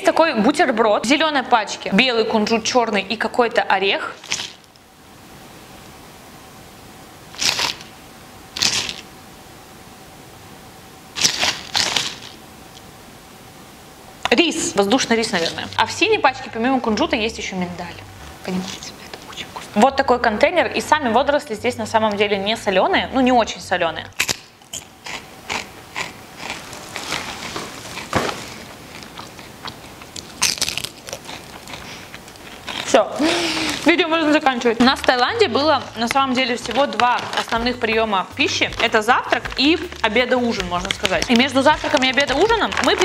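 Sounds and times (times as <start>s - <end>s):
faint steady hum: 0.0s - 43.0s
biting crisp snack: 4.2s - 4.8s, 7.4s - 7.9s, 8.6s - 9.1s, 11.2s - 12.4s, 24.2s - 33.9s, 38.7s - 43.0s
crunchy chewing: 4.2s - 4.8s, 7.4s - 8.0s, 8.6s - 9.1s, 11.2s - 12.8s, 24.1s - 33.9s, 38.6s - 43.0s
plastic packaging crinkling: 4.2s - 4.8s, 7.4s - 8.0s, 8.6s - 9.1s, 11.2s - 12.4s, 26.4s - 43.0s.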